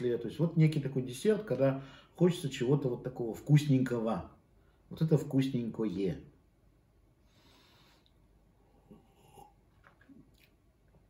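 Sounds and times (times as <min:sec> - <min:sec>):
person sipping and swallowing: 0:08.6 - 0:11.0.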